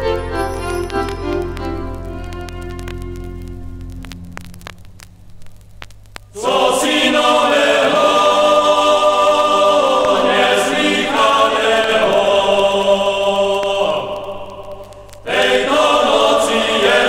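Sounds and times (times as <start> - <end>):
vinyl record crackle: 0.0 - 17.0
choir singing in parts: 6.4 - 17.0.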